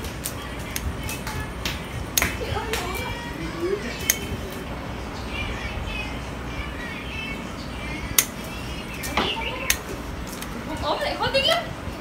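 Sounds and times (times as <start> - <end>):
pruning scissors snipping twigs: 4.0 - 4.6, 8.1 - 8.4.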